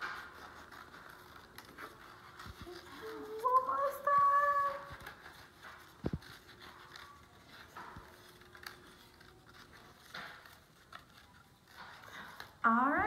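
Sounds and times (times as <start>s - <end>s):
scissors cutting paper plate: 0.0s - 13.0s.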